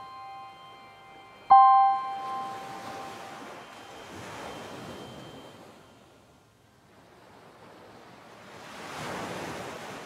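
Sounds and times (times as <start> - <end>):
bell-like chime: 0.0 - 6.4
soft wash of noise: 0.0 - 6.6.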